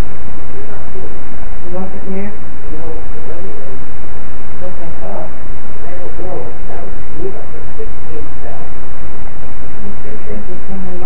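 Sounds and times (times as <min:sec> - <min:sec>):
faint indistinct voices: 0:00.0 - 0:11.0
loud microphone hiss: 0:00.0 - 0:11.0.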